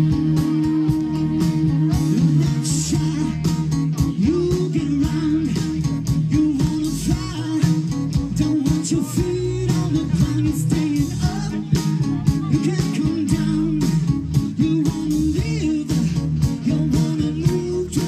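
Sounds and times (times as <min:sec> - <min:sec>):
electric guitar: 0:00.0 - 0:18.0
steady drum beat: 0:00.0 - 0:18.0
man singing: 0:01.2 - 0:18.0.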